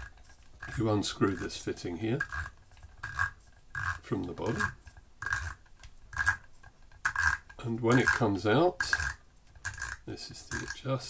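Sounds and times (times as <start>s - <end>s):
metal fitting rasping scrapes: 0.0s - 11.0s.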